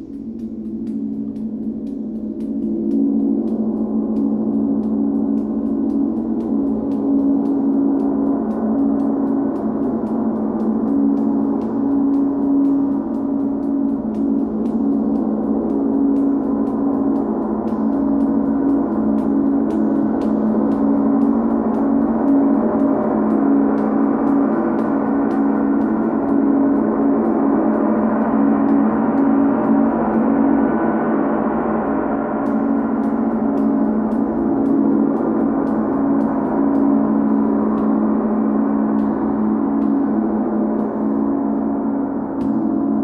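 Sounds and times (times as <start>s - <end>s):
deep wavering hum: 0.0s - 43.0s.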